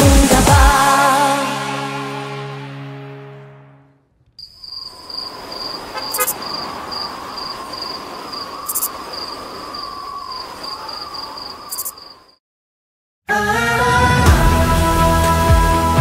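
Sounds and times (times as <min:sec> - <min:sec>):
insects chirping: 0:04.3 - 0:12.4.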